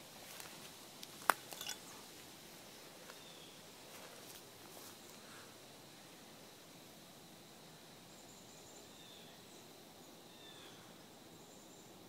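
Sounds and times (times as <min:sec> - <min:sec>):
footsteps crackling on dry leaves: 0:00.0 - 0:02.0.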